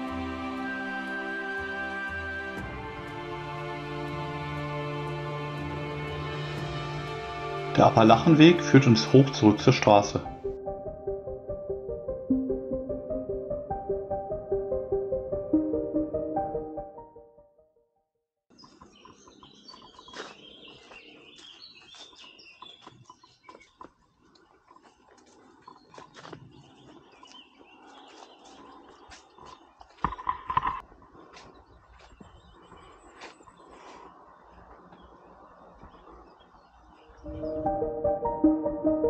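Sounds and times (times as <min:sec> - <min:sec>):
birds chirping: 0:18.5 - 0:39.0.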